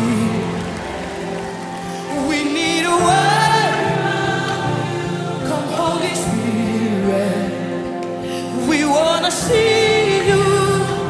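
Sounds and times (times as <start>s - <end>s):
choir singing: 0.0s - 11.0s
woman singing lead: 1.9s - 11.0s.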